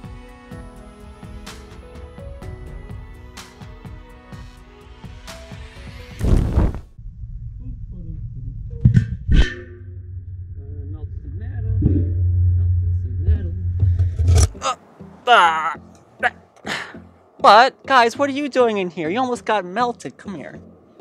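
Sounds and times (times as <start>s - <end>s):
background music: 0.0s - 6.2s, 13.5s - 21.0s
sudden loud whoosh: 6.2s - 14.6s
muffled low rumble in furnace: 6.9s - 14.6s.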